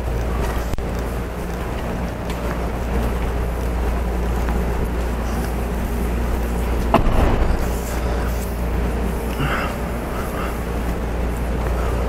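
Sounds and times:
low hum and rumble: 0.0 - 12.0
sharp knock: 6.9 - 7.7.

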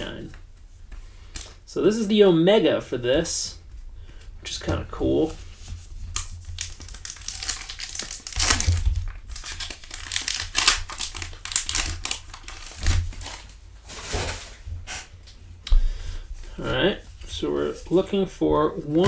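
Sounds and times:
wrapper crinkling and tearing: 5.9 - 14.6.

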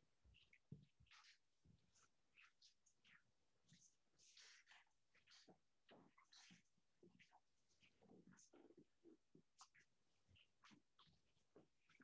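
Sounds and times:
faint soft rustles: 0.2 - 12.0.

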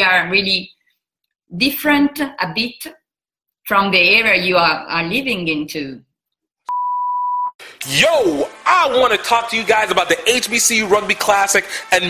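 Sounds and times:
steady electronic beep: 6.7 - 7.6.

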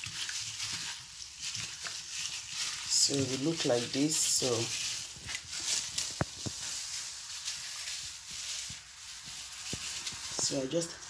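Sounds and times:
wet squelching of chicken in marinade: 0.0 - 11.0.

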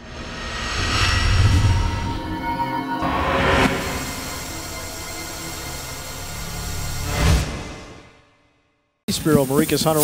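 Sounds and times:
low rumble: 0.0 - 6.7.

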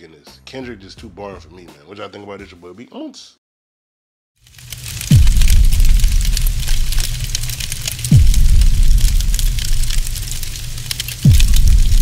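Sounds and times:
crackling fire and scattering debris: 4.4 - 12.0
deep booming hits: 5.0 - 12.0.

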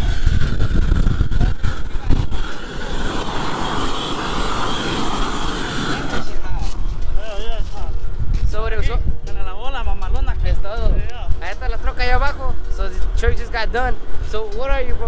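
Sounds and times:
roofing torch hissing roar: 0.0 - 8.8
wind buffeting microphone: 0.0 - 15.0.

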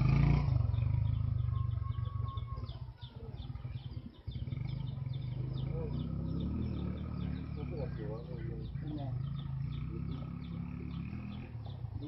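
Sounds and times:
high chirping call: 0.1 - 12.0.

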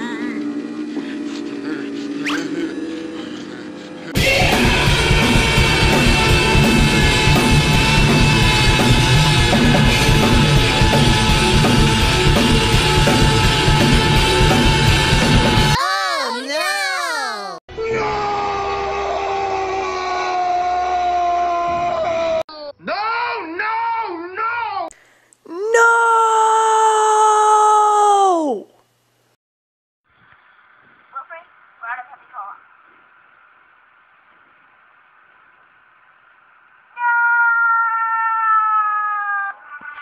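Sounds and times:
man yelling: 15.8 - 18.3, 25.5 - 28.6.

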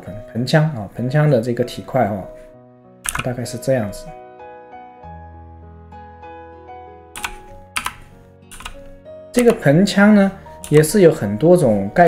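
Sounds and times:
soft background music: 0.0 - 12.0
keyboard keys clicking: 3.0 - 3.4, 7.2 - 9.8, 10.6 - 11.0.

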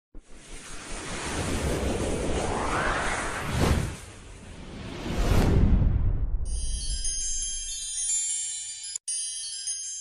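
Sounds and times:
whoosh sound effect: 0.2 - 6.5.

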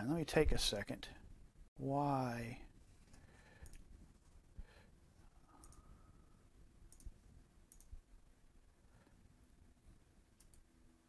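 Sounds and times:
faint computer mouse clicks: 3.6 - 3.9, 5.5 - 5.9, 6.9 - 8.0, 10.4 - 10.7.

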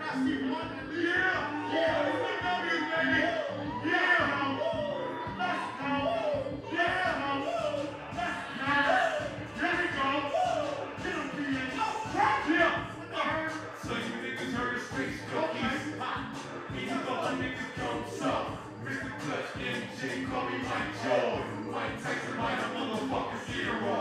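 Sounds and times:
hip-hop beat over pa: 0.0 - 24.0
person rapping: 0.0 - 24.0.

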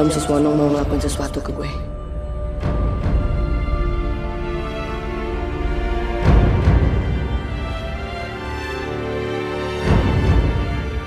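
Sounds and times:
dramatic score sustained tones: 0.0 - 11.0.

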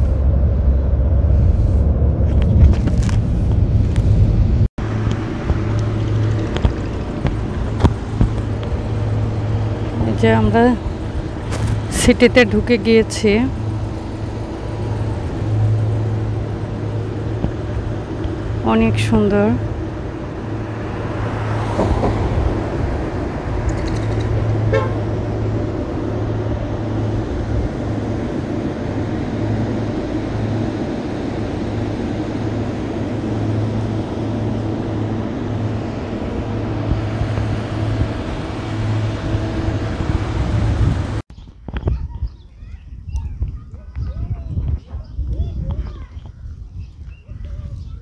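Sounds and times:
car engine and tyre rumble: 0.0 - 41.3.

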